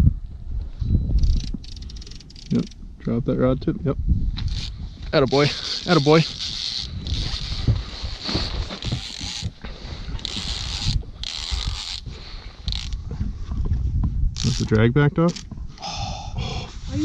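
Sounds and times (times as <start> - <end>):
low wind rumble: 0.0 - 17.0
fishing reel drag hissing: 1.2 - 2.8, 4.5 - 9.5, 10.2 - 13.0.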